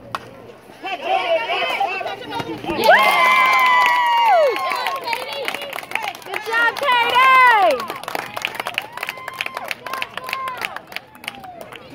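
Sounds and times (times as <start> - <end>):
spectators shouting and cheering: 0.7 - 11.9.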